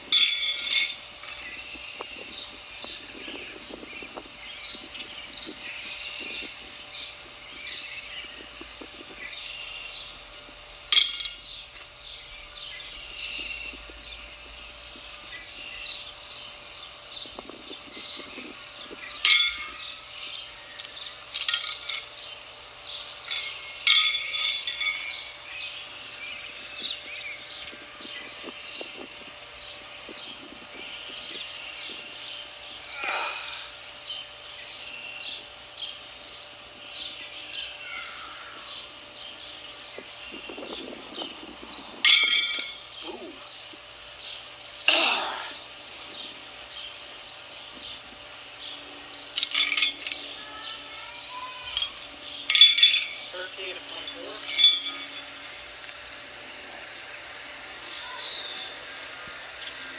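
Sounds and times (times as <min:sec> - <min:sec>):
songbirds chirping: 0:00.0 - 0:59.9
horseshoes clanging on metal stake: 0:00.1 - 0:01.5, 0:10.9 - 0:11.4, 0:19.2 - 0:19.8, 0:21.3 - 0:22.2, 0:23.2 - 0:25.3, 0:42.0 - 0:42.8, 0:49.4 - 0:50.2, 0:51.7 - 0:53.3, 0:53.9 - 0:55.7.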